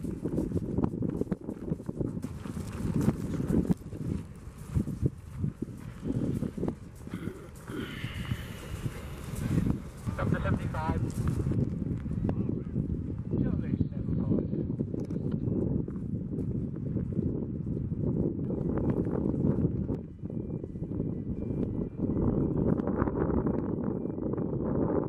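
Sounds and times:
low uneven rumbling: 0.0 - 20.2
indistinct voices: 7.0 - 11.1.

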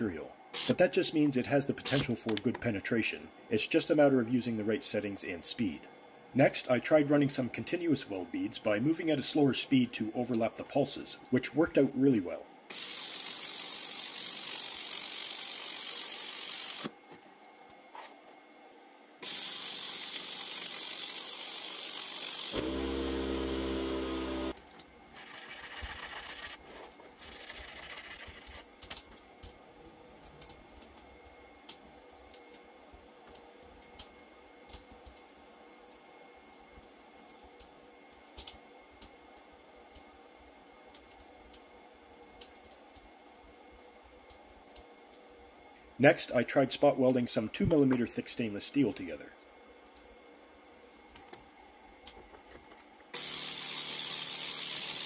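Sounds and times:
laser welder buzz: 0.5 - 0.8, 1.8 - 2.2, 12.7 - 17.0, 19.2 - 24.6, 53.2 - 55.0
laser welder hissing: 0.5 - 1.0, 1.6 - 2.2, 12.7 - 16.9, 19.2 - 24.6, 53.2 - 55.0.

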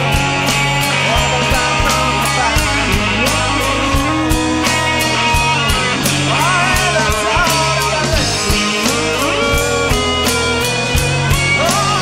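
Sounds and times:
bass guitar: 0.0 - 12.0
drum kit with cymbal strikes: 0.0 - 12.0
electric guitars: 0.0 - 12.0.

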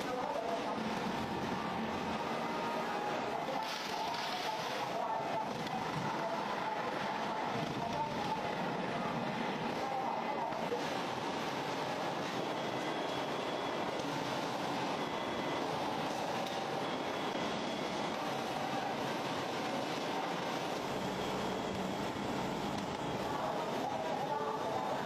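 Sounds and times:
faint machine whine: 0.0 - 25.0
food-processing machinery running: 0.0 - 25.0.

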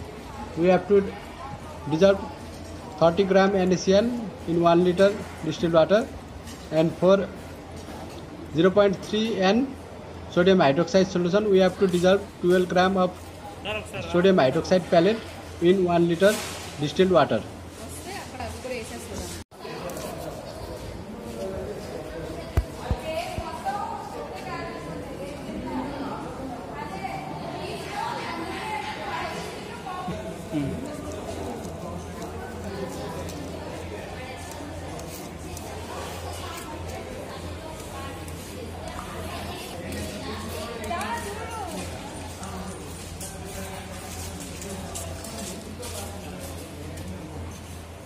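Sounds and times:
faint voices talking: 0.0 - 48.0.

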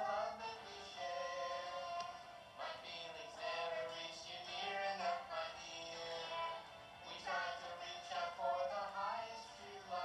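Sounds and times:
song with sung melody: 0.0 - 10.0.

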